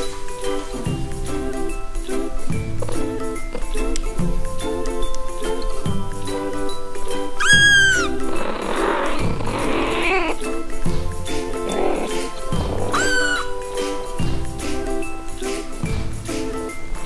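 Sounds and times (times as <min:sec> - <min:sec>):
background music: 0:00.0 - 0:17.0
kitten meowing: 0:07.4 - 0:10.4, 0:12.8 - 0:13.5.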